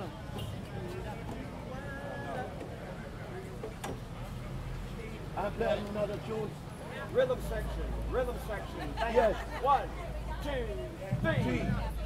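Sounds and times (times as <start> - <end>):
faint voices talking: 0.0 - 12.0
low steady rumble: 11.0 - 12.0.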